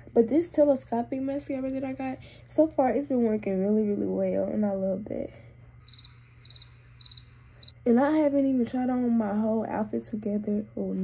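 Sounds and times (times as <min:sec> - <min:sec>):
faint steady hum: 0:00.0 - 0:11.0
insect chirping: 0:05.8 - 0:07.7.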